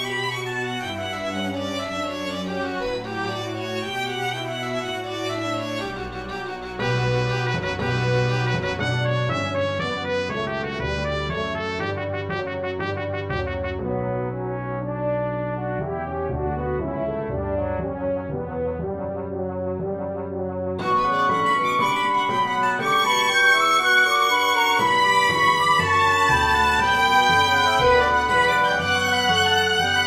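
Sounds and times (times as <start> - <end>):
orchestral brass playing: 0.0 - 20.0, 20.8 - 30.0.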